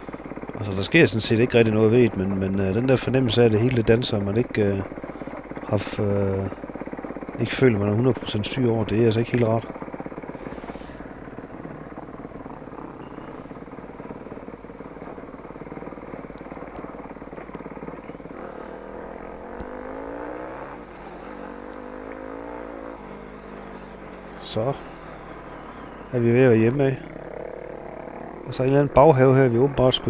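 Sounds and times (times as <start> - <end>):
motorcycle engine revving: 0.0 - 30.0.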